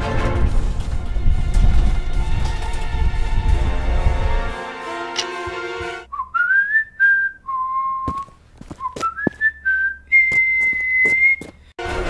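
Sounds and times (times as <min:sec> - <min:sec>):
person whistling a tune: 0:06.1 - 0:11.6.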